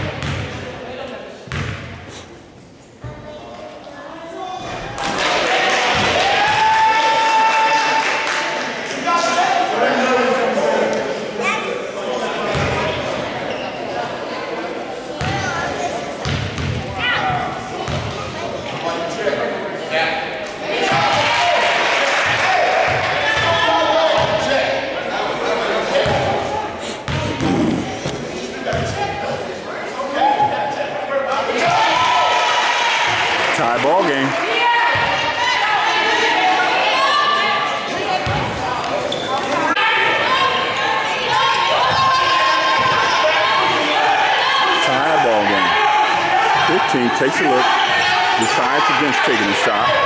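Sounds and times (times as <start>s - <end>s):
voices talking and calling out: 7.5s - 50.0s.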